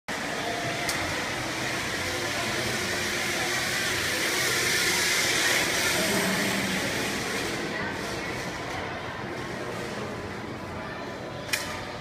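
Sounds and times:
zip-line trolley whirring on cable: 0.1 - 10.2.

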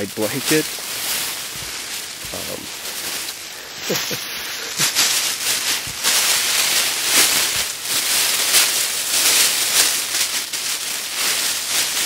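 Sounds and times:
foil blanket crinkling: 0.0 - 12.0.

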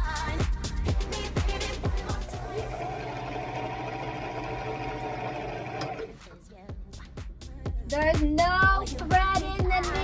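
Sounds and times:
sewing machine running: 2.4 - 6.2.

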